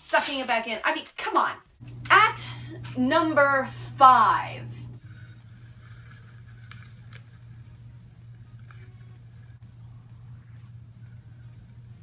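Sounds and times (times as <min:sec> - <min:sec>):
low hum: 0:01.8 - 0:12.0.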